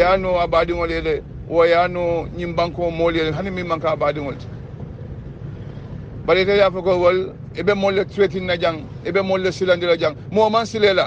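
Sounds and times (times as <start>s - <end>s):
man's voice: 0.0s - 4.4s, 6.3s - 11.0s
low background hum: 0.0s - 11.0s.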